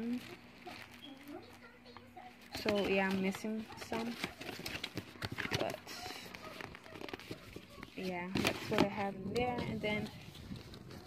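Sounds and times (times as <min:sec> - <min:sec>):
card rustling against card: 0:00.0 - 0:11.0.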